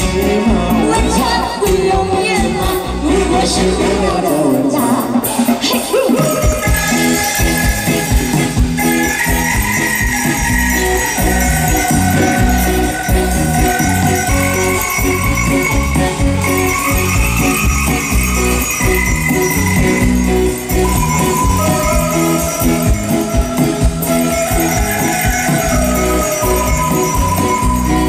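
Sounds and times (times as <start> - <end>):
pop band playing instrumental: 0.0 - 28.0
jingling shaker percussion: 5.9 - 28.0.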